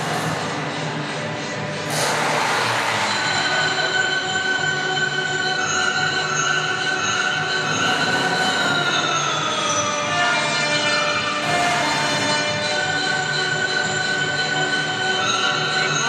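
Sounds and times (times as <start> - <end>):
racing car engine whine: 0.0 - 6.4.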